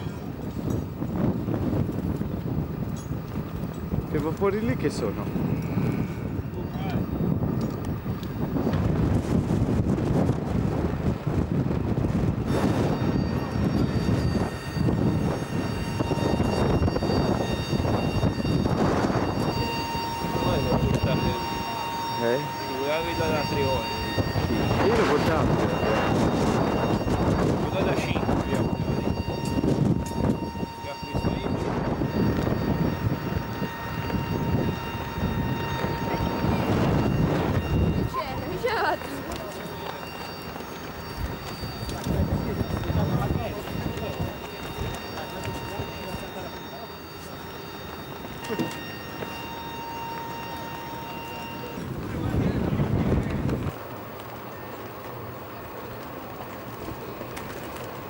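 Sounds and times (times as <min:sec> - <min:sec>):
steady high whine: 0:00.0 - 0:58.0
wind buffeting microphone: 0:00.0 - 0:58.0
people talking: 0:04.0 - 0:07.4, 0:12.5 - 0:58.0.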